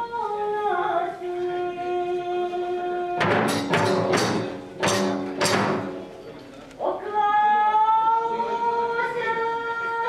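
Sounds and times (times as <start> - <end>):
drum and cymbal ringing: 3.2 - 6.2.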